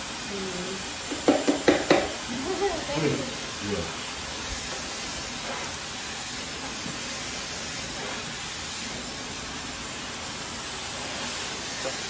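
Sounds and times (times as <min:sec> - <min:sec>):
hair dryer running: 0:00.0 - 0:04.8.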